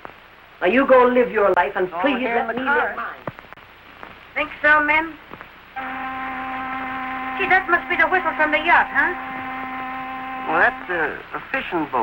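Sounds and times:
boat whistle long note: 5.8s - 11.2s.

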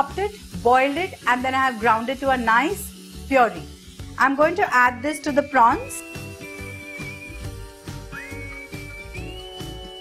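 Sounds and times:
whistle-like synth lead: 4.9s - 10.0s.

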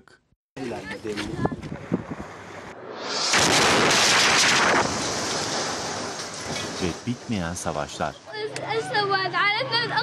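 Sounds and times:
explosion blast: 1.9s - 7.7s.

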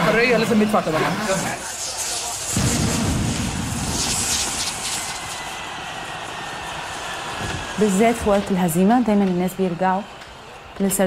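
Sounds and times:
loud steady rushing noise: 0.0s - 8.8s.

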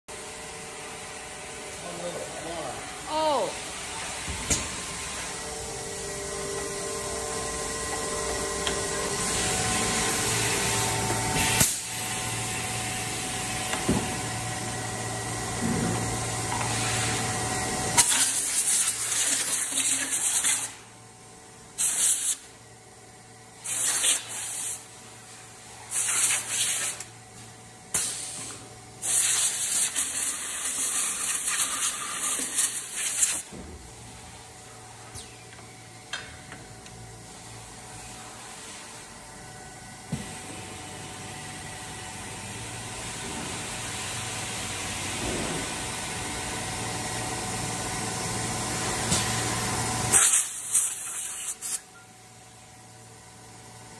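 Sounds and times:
machine hum: 0.1s - 18.0s, 30.1s - 50.0s.

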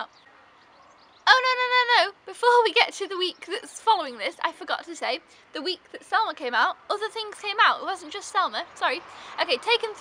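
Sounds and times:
woman talking: 1.3s - 10.0s.

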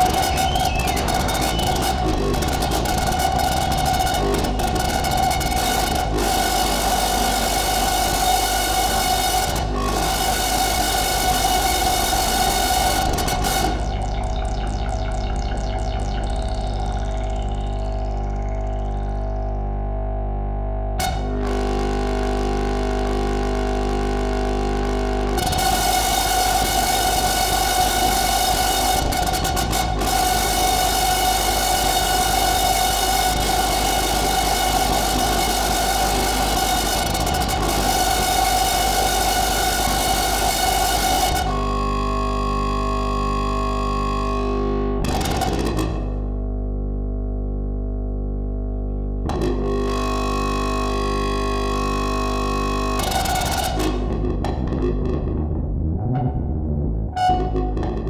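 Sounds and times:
strong low bass: 0.0s - 41.7s, 44.3s - 58.0s
electronic drone music: 0.0s - 58.0s.

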